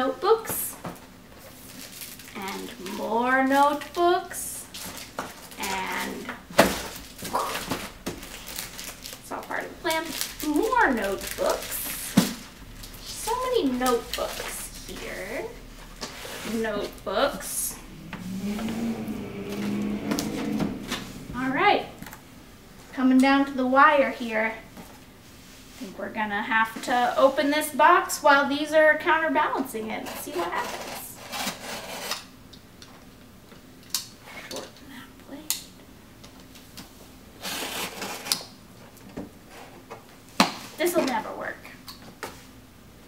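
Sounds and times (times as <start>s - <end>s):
plastic-wrapped notebooks rustling: 1.4s - 16.2s
low hum: 5.8s - 24.8s.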